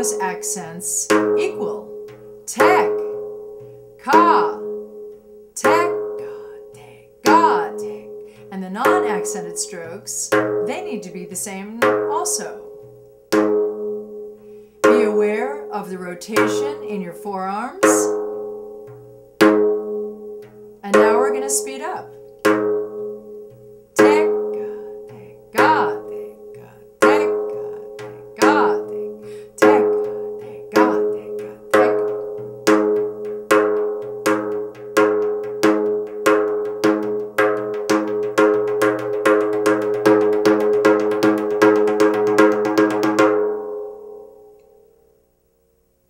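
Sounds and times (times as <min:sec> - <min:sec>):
frame drum strokes: 0:00.0 - 0:43.7.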